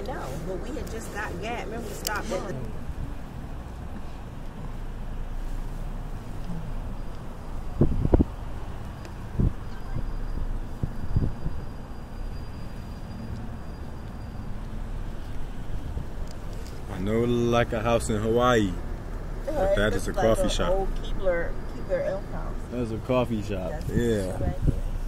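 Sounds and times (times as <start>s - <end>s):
car cabin road noise: 0.0s - 25.0s.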